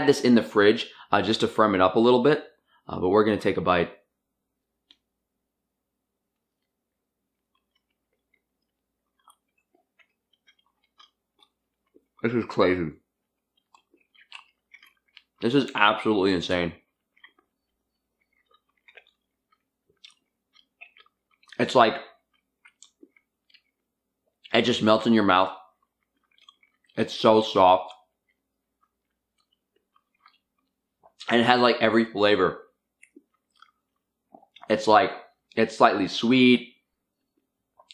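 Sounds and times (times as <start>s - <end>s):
soft chewing: 4.0s - 5.4s, 6.0s - 31.9s, 32.6s - 35.7s, 36.7s - 37.9s
wet mouth sounds: 6.3s - 16.1s, 16.8s - 24.6s, 25.7s - 31.3s, 32.9s - 34.7s, 37.2s - 37.9s.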